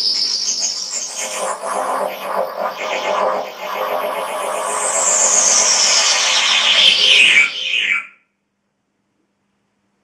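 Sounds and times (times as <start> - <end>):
electronic synthesizer sounds: 0.8 - 8.0
high tone gliding downward: 0.9 - 8.0.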